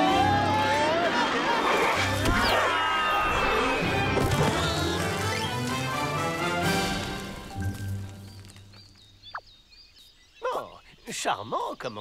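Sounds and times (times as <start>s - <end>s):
birds chirping: 4.4s - 12.0s.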